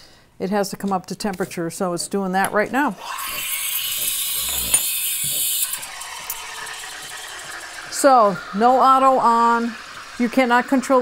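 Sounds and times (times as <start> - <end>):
steam wand hissing into milk: 3.0 - 11.0.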